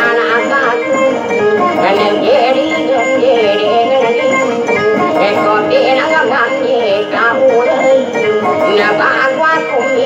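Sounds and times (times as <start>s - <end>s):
man singing: 0.0s - 1.0s, 1.6s - 10.0s
acoustic guitar plucked: 0.0s - 10.0s.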